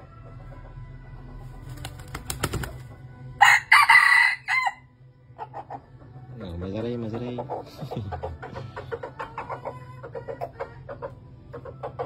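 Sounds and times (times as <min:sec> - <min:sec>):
wing flaps: 0:01.6 - 0:02.9
rooster crowing: 0:03.4 - 0:04.9.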